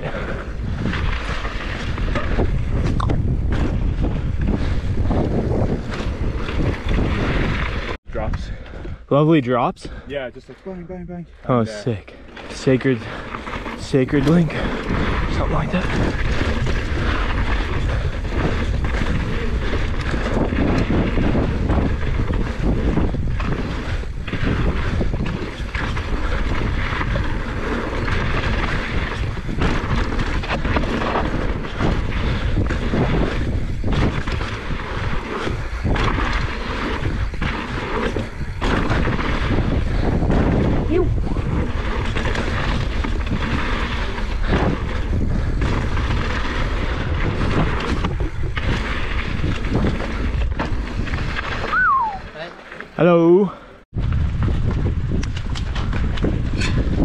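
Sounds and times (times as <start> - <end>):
bike tyres rolling on gravel: 0.0 - 8.0, 11.9 - 57.0
bike knocking and rattling: 0.0 - 9.0, 12.2 - 51.8, 53.9 - 57.0
wind buffeting microphone: 0.0 - 52.5, 53.6 - 57.0.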